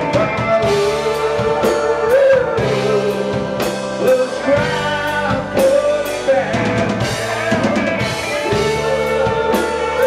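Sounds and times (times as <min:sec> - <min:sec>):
lead vocal holding long note: 0:00.0 - 0:10.0
rock band playing: 0:00.0 - 0:10.0.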